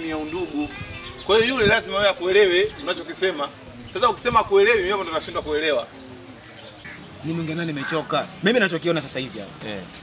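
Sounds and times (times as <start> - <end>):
dove cooing: 4.9 - 8.1.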